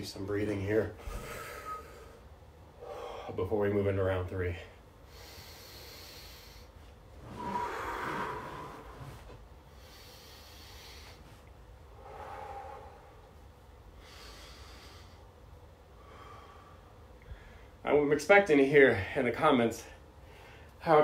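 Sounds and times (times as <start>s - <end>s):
man breathing deeply: 1.0s - 3.4s, 5.0s - 17.8s, 20.1s - 20.8s.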